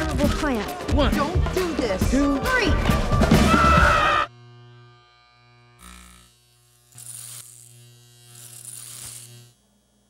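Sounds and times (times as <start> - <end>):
low buzzing hum: 4.3 - 10.0.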